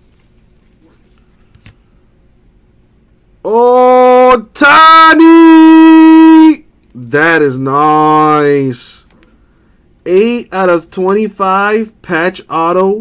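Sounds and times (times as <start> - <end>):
cards being handled: 0.0 - 1.8
man yelling excitedly: 3.4 - 8.9.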